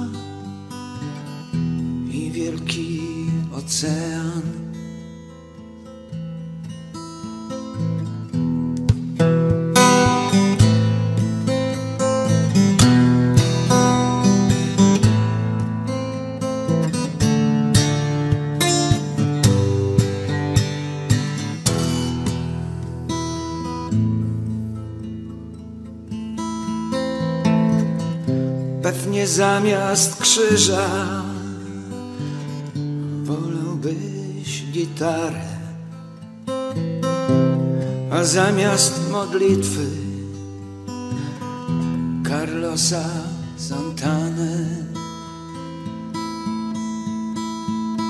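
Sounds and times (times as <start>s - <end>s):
guitar plucked and strummed: 0.0s - 48.0s.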